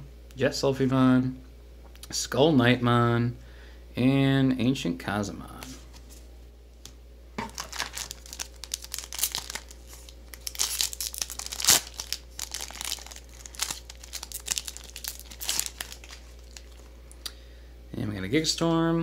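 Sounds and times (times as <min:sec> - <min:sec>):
foil wrapper crinkling and tearing: 0:07.5 - 0:17.1.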